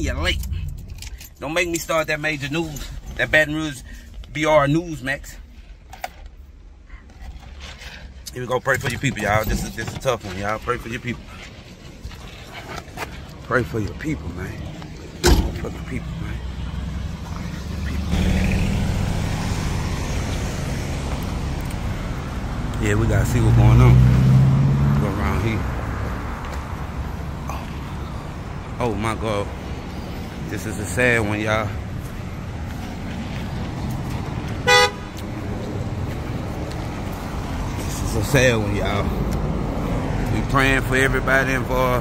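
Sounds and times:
road traffic rumble: 0.0s - 42.0s
car horn beep: 34.6s - 35.2s.

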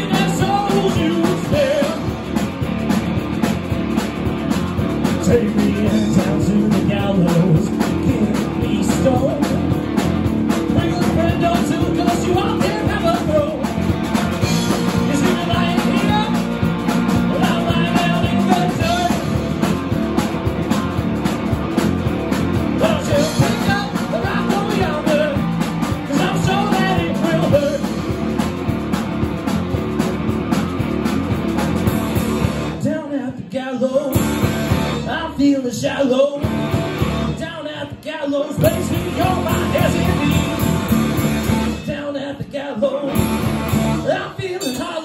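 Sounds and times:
electric guitars: 0.0s - 32.9s, 34.1s - 35.4s, 36.3s - 37.7s, 38.4s - 44.9s
drum kit: 0.0s - 35.7s, 36.4s - 45.0s
bass guitar: 0.0s - 45.0s.

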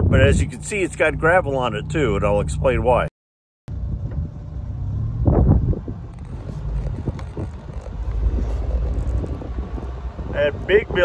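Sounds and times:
wind on microphone: 0.0s - 0.6s, 3.7s - 11.0s
car driving on gravel: 4.0s - 11.0s
gravel clicks: 6.1s - 10.3s.

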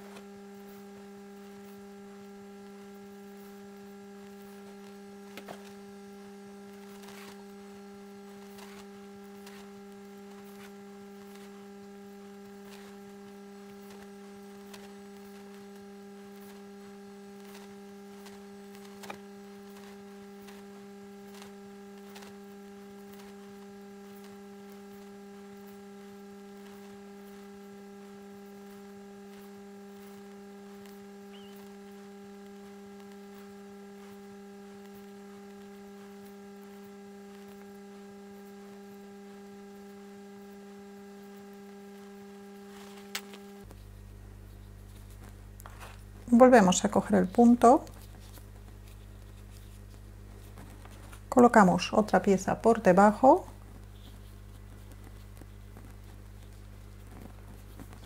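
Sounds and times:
low electrical hum: 0.0s - 58.0s.

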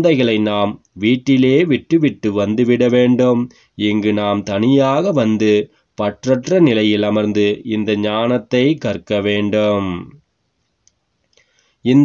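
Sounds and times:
person reading aloud: 0.0s - 10.2s
faint clicks: 10.6s - 11.5s.

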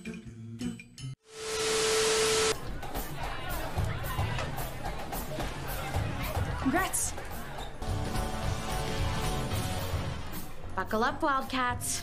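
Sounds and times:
static hiss: 1.3s - 2.6s
steady mid-pitched tone: 1.3s - 2.6s.

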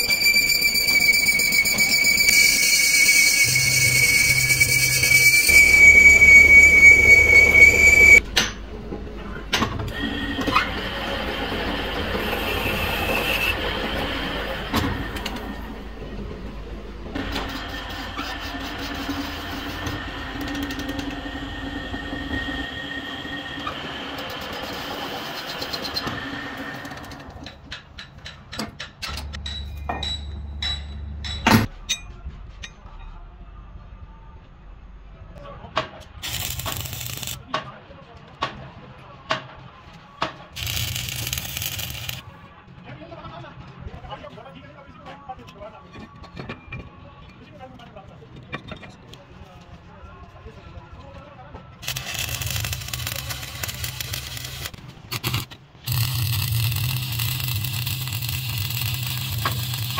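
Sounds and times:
high-pitched tool whine: 0.0s - 8.2s, 55.9s - 59.9s
metal lathe cutting steel: 0.0s - 8.2s, 9.9s - 15.7s, 40.6s - 42.2s, 51.8s - 59.9s.

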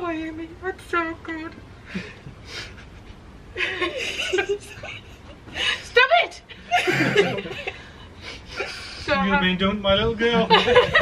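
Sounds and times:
woman laughing: 2.0s - 8.9s, 10.4s - 11.0s.

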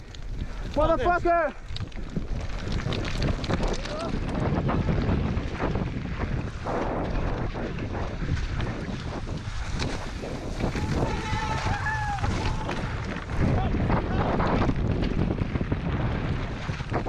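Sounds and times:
bike clattering: 0.0s - 17.0s
tyres on rough muddy trail: 0.0s - 17.0s
wind rushing over microphone: 0.0s - 17.0s.

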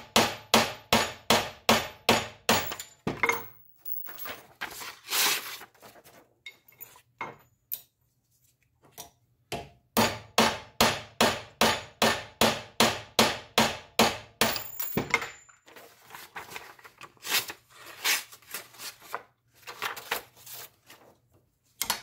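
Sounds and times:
hammer striking metal blade: 0.0s - 3.0s, 10.0s - 15.2s
tools clattering: 2.5s - 4.8s, 6.4s - 7.9s, 14.4s - 16.0s.

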